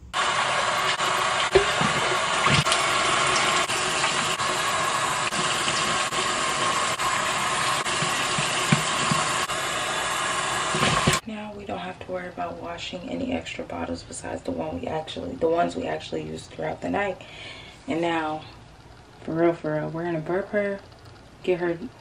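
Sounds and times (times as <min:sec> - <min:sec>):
tap water running into sink: 0:00.2 - 0:11.2.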